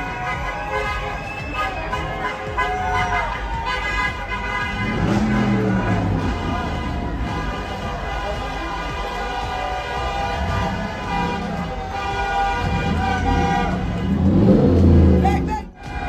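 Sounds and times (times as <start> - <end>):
car horns honking: 0.0 - 16.0
crowd voices: 0.0 - 16.0
traffic noise: 0.0 - 16.0.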